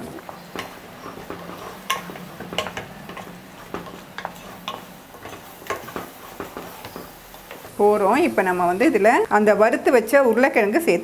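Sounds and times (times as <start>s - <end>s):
wooden spatula knocking metal pot: 0.3s - 7.8s.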